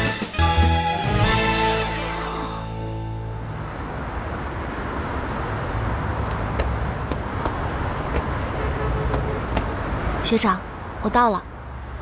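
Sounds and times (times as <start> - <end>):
cars driving past: 2.0 - 12.0.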